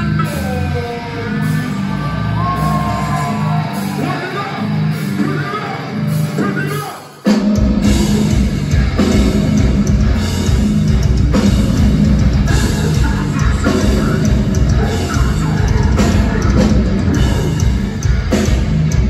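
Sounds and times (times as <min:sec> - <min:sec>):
heavy metal band playing live: 0:00.0 - 0:19.0.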